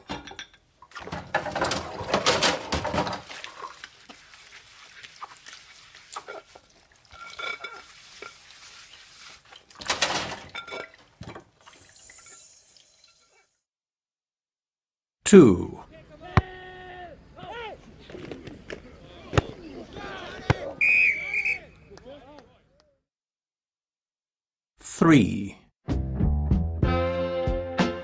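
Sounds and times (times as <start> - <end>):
plates and cutlery clinking: 0.0 - 3.2, 6.2 - 8.4
water splashing: 0.8 - 13.3.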